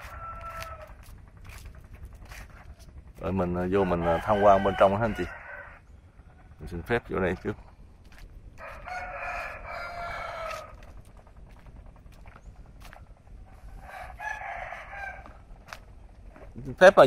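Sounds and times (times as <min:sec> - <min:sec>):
rooster crowing: 0:00.0 - 0:01.1, 0:03.4 - 0:05.8, 0:08.6 - 0:10.9, 0:13.7 - 0:15.8.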